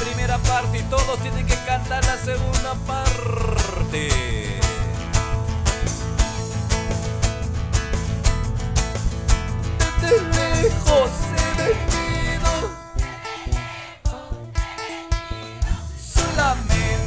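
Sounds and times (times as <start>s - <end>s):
strummed nylon-string guitars: 0.0s - 17.0s
electric bass: 0.1s - 12.8s.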